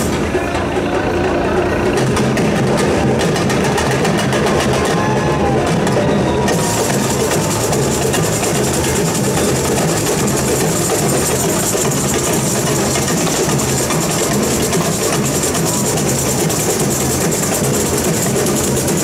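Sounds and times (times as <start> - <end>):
samba drums: 0.0 - 19.0
shakers rattling: 6.5 - 19.0.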